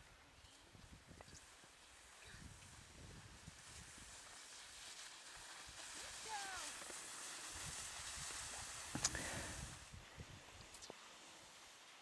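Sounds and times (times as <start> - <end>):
skis hissing on snow: 0.4 - 12.0
high falling voice call: 6.2 - 6.8.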